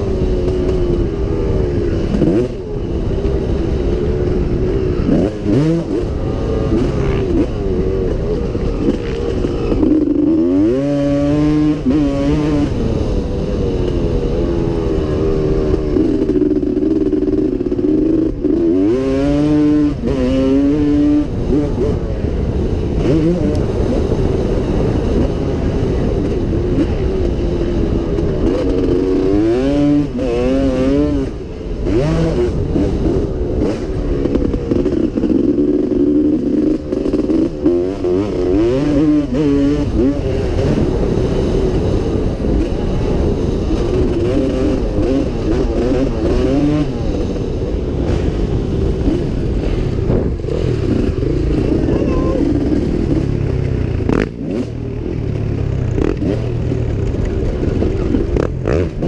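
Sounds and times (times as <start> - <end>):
motocross bike engine revving: 0.0 - 59.0
wind rushing over microphone: 0.0 - 59.0.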